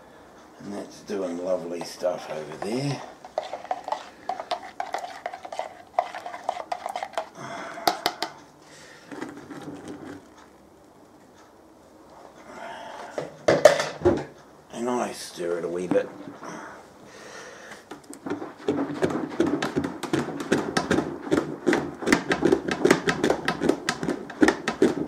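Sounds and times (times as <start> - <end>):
plastic utensils clicking and knocking: 2.6 - 8.4, 18.7 - 25.0.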